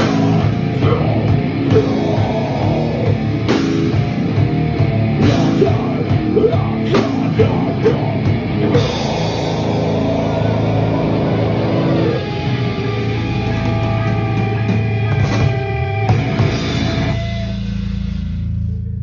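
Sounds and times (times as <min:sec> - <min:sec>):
hardcore band playing live: 0:00.0 - 0:18.8.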